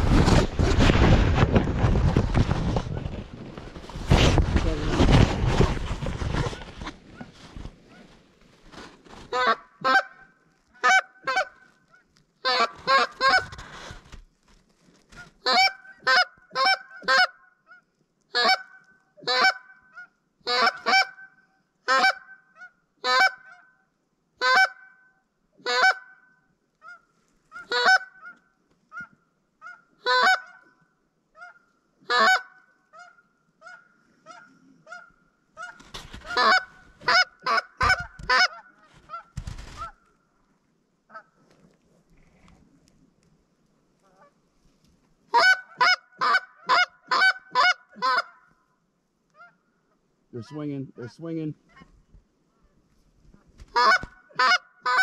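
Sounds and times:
geese honking and clucking: 9.1s - 13.7s, 15.1s - 23.8s, 24.4s - 40.1s, 41.1s - 41.4s, 44.0s - 44.4s, 45.3s - 48.6s, 49.3s - 52.0s, 53.7s - 55.0s.

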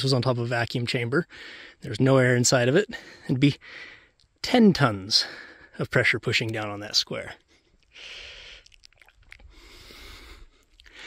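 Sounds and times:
person breathing: 1.3s - 1.8s, 3.0s - 4.2s, 7.5s - 8.8s, 9.4s - 11.0s.

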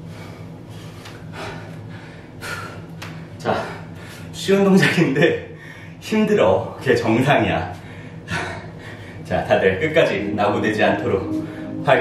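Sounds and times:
man breathing hard: 0.0s - 4.4s, 5.5s - 6.0s, 7.8s - 9.2s.

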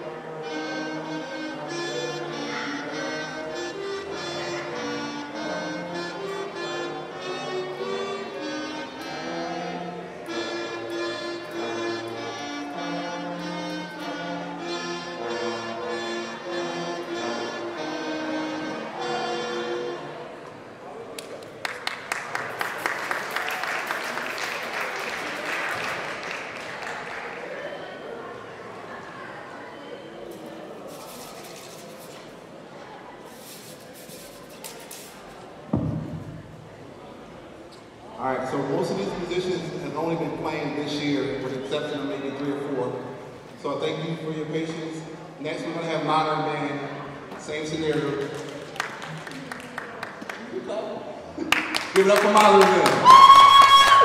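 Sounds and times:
small wind and brass band playing: 0.0s - 20.7s
audience applause and cheering: 21.4s - 27.9s, 51.4s - 54.0s.

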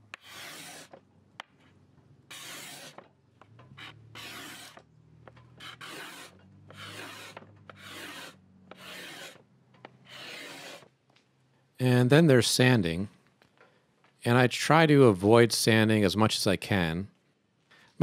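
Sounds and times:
steel scraper scraping wood: 0.1s - 1.0s, 2.3s - 3.1s, 3.7s - 4.9s, 5.5s - 9.4s, 10.0s - 10.9s.

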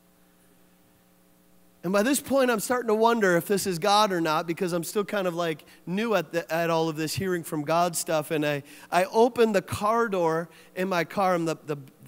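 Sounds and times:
faint electrical hum: 0.0s - 12.0s
man speaking: 1.8s - 12.0s.

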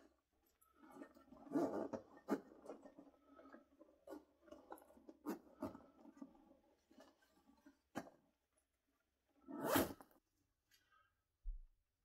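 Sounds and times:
zipper rasp: 0.8s - 3.1s, 9.4s - 10.2s.

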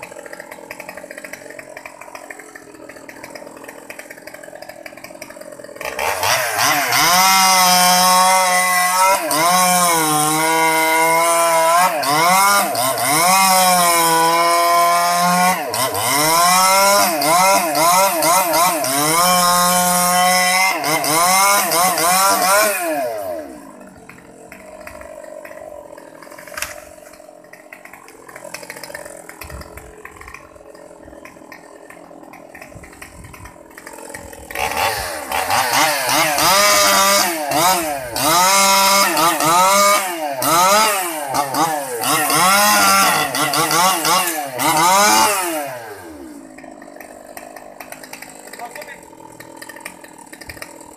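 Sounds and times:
chainsaw cutting wood: 0.0s - 50.9s
chainsaw idling: 0.0s - 50.9s
chainsaw revving: 0.0s - 50.9s.

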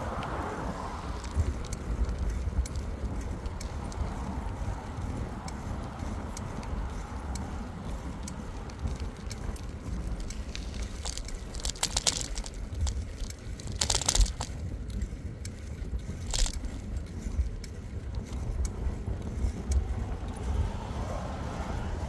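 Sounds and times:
wind and tyre rumble: 0.0s - 22.0s
brief rattles: 9.6s - 14.6s.

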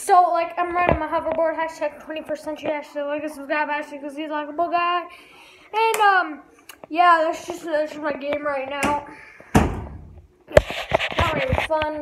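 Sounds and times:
heavy thumps: 8.8s - 11.7s
brief rustling: 10.5s - 12.0s.

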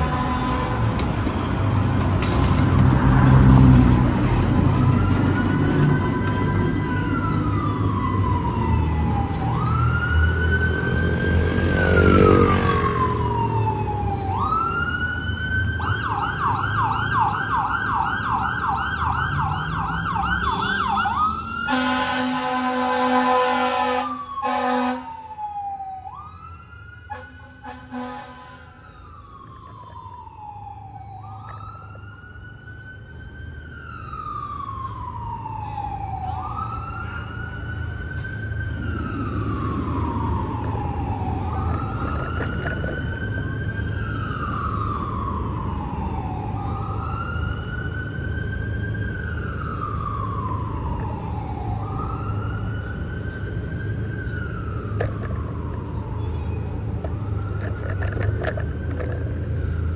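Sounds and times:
fire engine siren wailing: 0.0s - 59.9s.

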